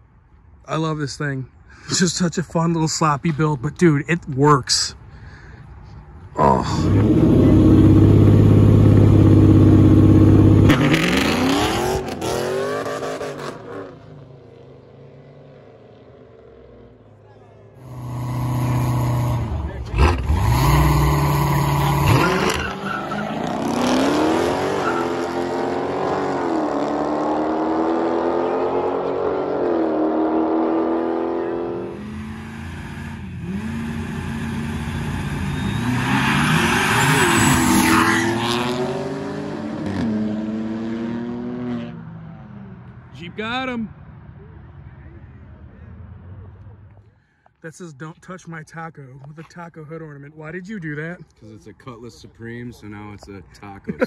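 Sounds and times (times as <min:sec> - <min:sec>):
cars accelerating hard: 0:06.4 - 0:17.0, 0:17.8 - 0:43.3.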